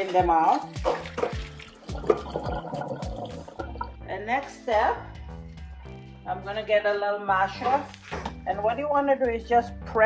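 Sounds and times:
water splashing into a steel sink: 0.0 - 4.0
background music with a beat: 0.1 - 6.2.

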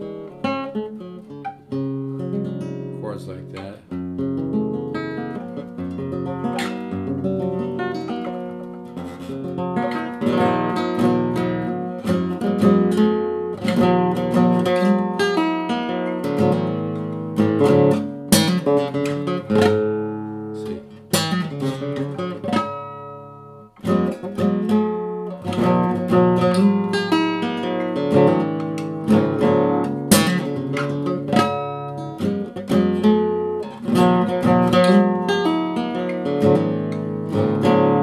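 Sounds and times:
classical guitar playing: 0.0 - 38.0
sharp strummed guitar chords: 0.0 - 38.0.

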